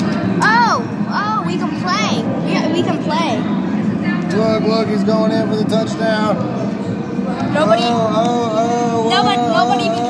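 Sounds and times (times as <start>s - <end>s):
crowded room hum: 0.0s - 10.0s.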